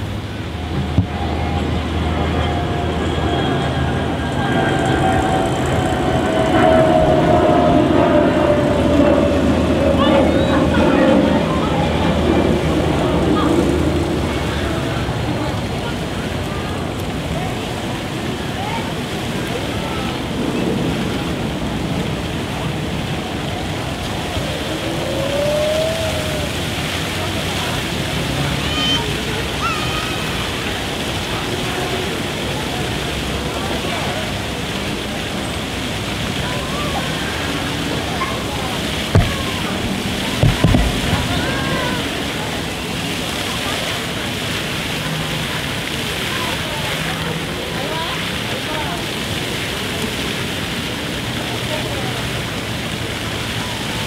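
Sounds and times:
children's voices and chatter: 0.0 - 54.0
fountain jets spraying water: 0.0 - 54.0
sharp thumps: 39.2 - 41.4.

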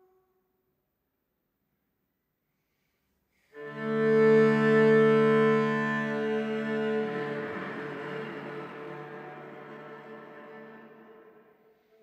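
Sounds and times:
cello bowed long note: 3.6 - 12.0.

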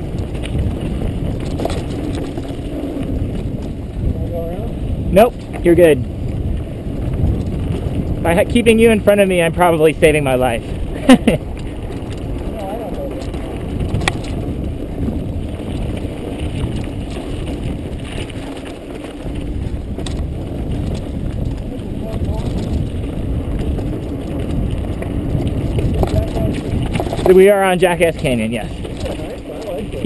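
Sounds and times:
bike rattle: 0.0 - 30.0
tyre noise on dirt: 0.0 - 30.0
wind rushing on microphone: 0.0 - 30.0.

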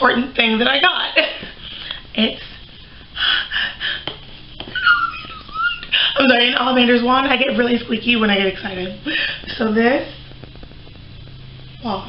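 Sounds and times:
woman squealing: 4.7 - 6.2.

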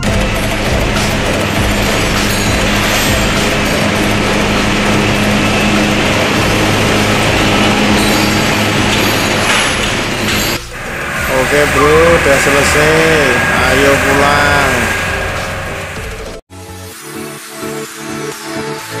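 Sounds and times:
mechanical clatter: 0.0 - 16.4
steady motor hum: 0.0 - 16.4.

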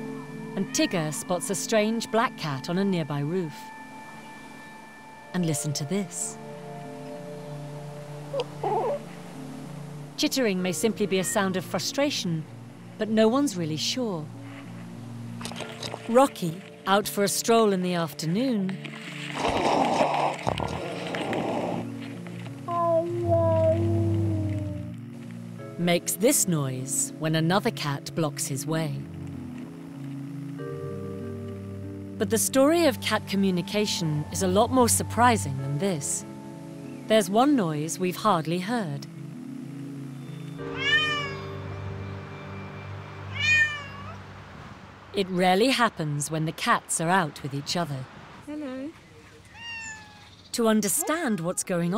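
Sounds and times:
soft background music: 0.0 - 48.9, 50.5 - 51.9
leaves and twigs rustling: 14.4 - 17.0, 18.6 - 25.5
cat meowing: 22.7 - 24.9, 40.7 - 41.5, 43.3 - 44.2, 49.5 - 50.3.

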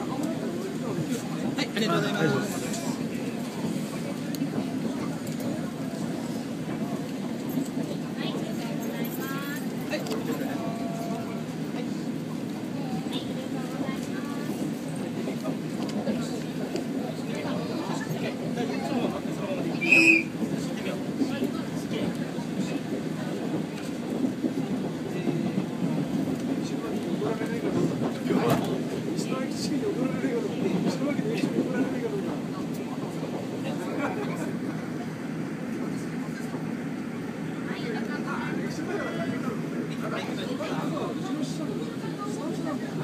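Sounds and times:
passengers' voices: 0.0 - 43.0
train wheels rumbling on rails: 0.0 - 43.0.

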